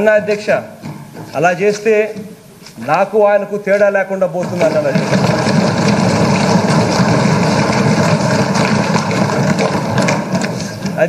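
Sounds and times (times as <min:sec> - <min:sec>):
people thumping desks: 0:00.0 - 0:01.5, 0:03.8 - 0:11.0.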